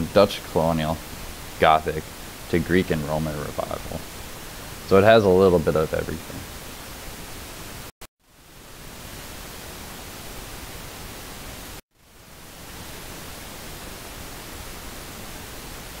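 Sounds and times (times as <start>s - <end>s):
background hiss: 0.0s - 16.0s.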